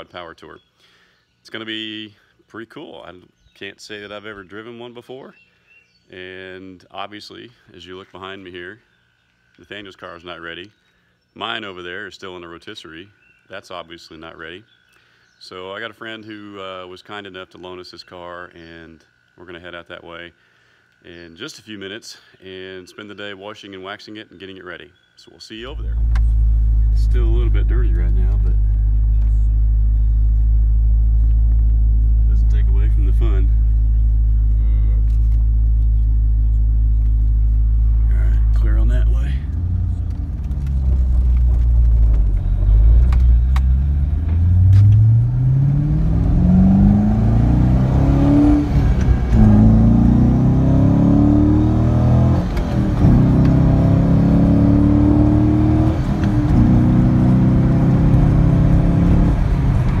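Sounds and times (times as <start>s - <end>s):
car engine idling and accelerating: 25.8s - 60.0s.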